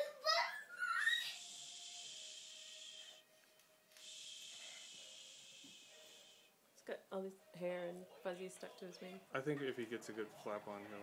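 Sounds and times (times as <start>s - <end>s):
faint steady hiss: 1.4s - 8.3s.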